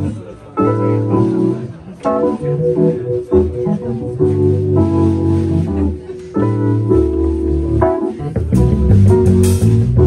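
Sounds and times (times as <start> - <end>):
live funk band playing: 0.0 - 10.0.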